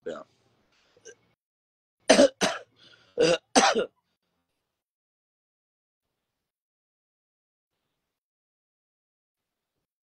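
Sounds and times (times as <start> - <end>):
man coughing: 2.1 - 4.0.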